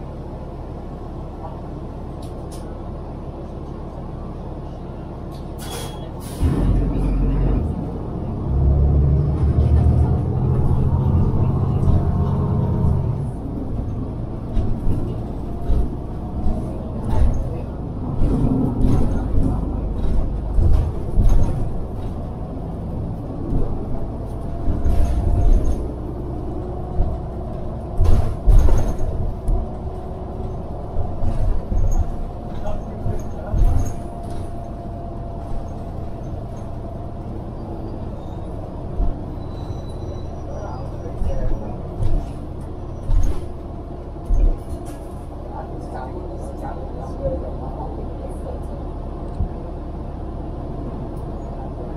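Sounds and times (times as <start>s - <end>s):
bus body rattling over bumps: 0.0s - 51.9s
bus engine and road rumble: 0.0s - 51.9s.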